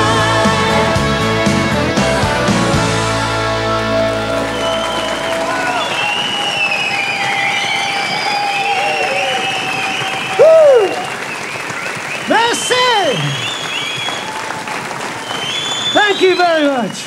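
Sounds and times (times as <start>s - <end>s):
band's final chord: 0.0s - 5.6s
audience applauding and cheering: 0.0s - 17.0s
loud shouts: 4.4s - 11.1s
whistles: 4.4s - 17.0s.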